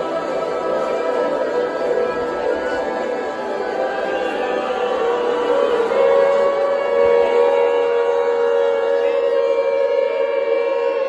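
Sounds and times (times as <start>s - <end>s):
voices holding a chord: 0.0s - 11.0s.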